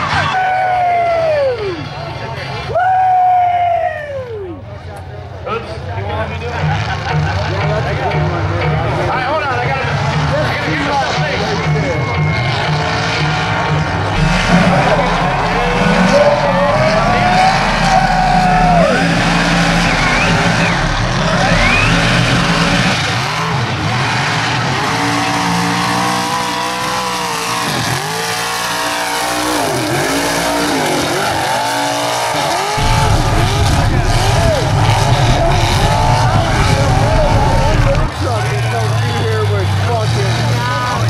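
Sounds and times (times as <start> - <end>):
truck engine revving: 6.3 - 41.0.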